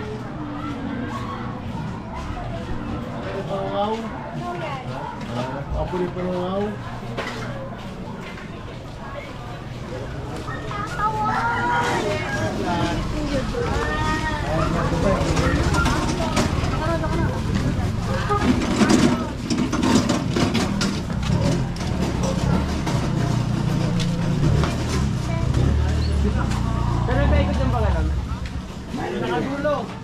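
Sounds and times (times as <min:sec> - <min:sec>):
people talking: 0:00.0 - 0:19.6
motorcycle engine rumbling: 0:12.6 - 0:29.5.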